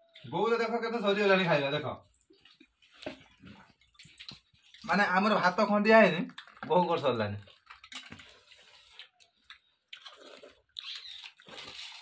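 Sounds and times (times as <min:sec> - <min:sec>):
person chewing crunchy food: 0:07.4 - 0:12.0.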